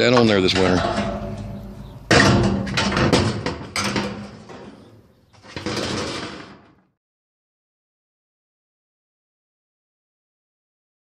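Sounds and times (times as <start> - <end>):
knocks clatter and scraping: 0.0 - 6.9.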